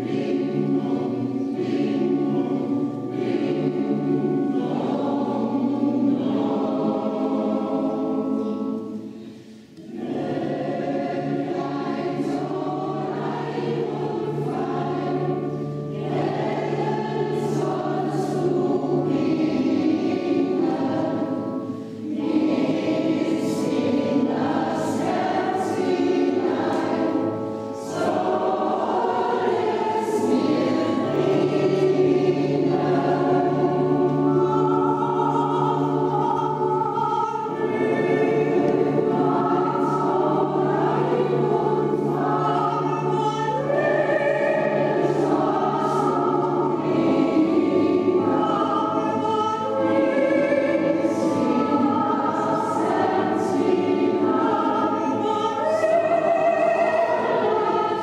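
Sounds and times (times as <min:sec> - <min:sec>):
church choir singing: 0:00.0 - 0:58.0.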